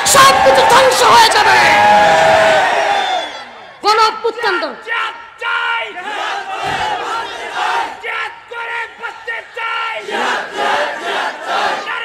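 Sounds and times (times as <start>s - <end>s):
crowd chanting in unison: 5.8s - 8.3s, 9.0s - 12.0s.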